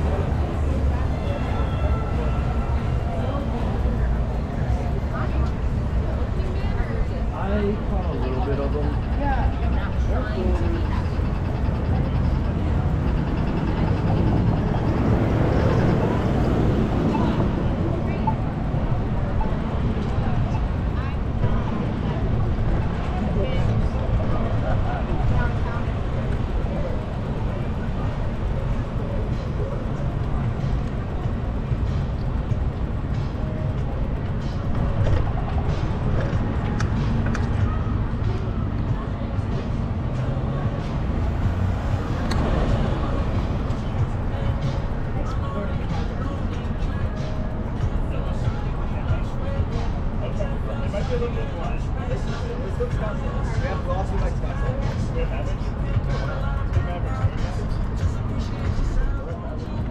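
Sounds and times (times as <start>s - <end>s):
bicycle road noise: 0.0s - 59.9s
cars passing: 0.0s - 59.9s
indistinct voices: 0.0s - 59.9s.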